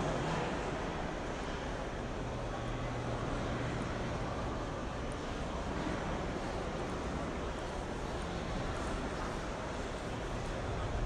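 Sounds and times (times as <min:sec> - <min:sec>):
noisy hall room tone: 0:00.0 - 0:11.0.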